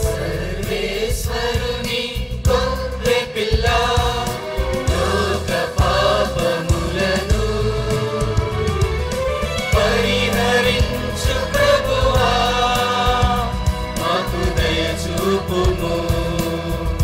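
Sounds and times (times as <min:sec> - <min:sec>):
choir singing a hymn: 0:00.0 - 0:17.0
instrumental accompaniment: 0:00.0 - 0:17.0.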